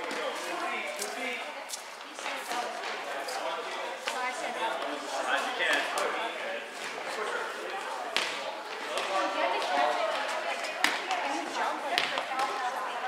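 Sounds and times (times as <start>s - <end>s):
players chattering in echoing gym: 0.0s - 13.0s
volleyballs slapping: 10.8s - 11.3s.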